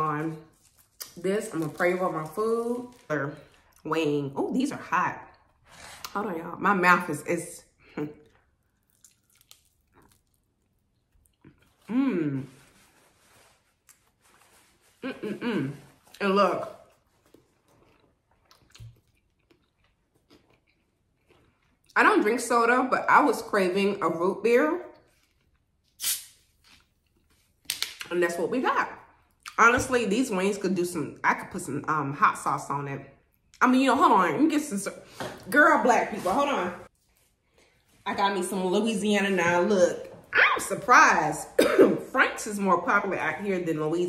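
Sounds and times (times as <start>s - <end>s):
faint chewing: 8.2s - 11.9s, 15.9s - 22.0s
woman humming: 15.0s - 15.8s
bottle cap opening carbonation hiss: 26.0s - 26.3s.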